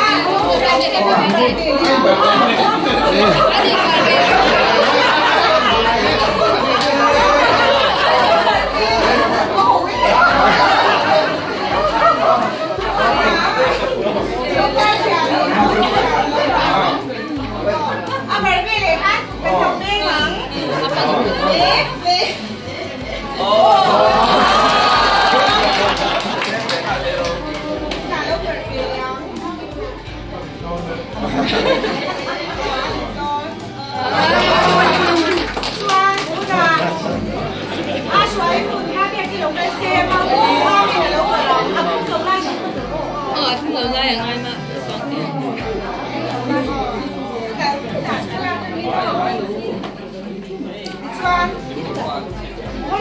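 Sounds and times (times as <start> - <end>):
overlapping chatter: 0.0 - 53.0
people talking over one another: 0.0 - 53.0.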